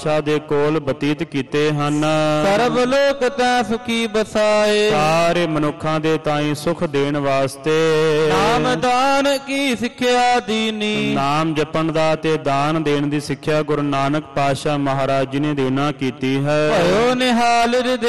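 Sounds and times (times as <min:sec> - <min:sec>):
man chanting melodically: 0:00.0 - 0:18.0.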